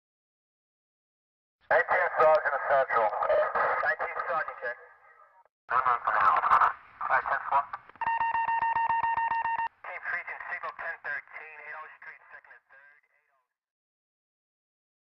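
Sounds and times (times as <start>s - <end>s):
police radio chatter: 1.7s - 13.3s.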